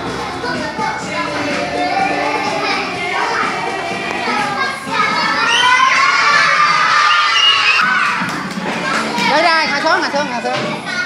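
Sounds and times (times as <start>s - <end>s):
children shouting and cheering: 0.0s - 9.9s, 10.5s - 11.0s.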